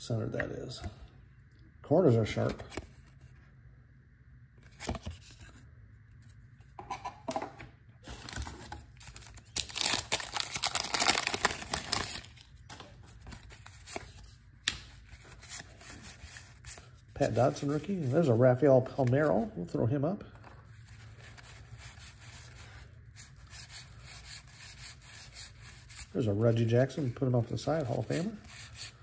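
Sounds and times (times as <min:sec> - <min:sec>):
wax-paper wrapper tearing and crinkling: 0:08.0 - 0:12.6.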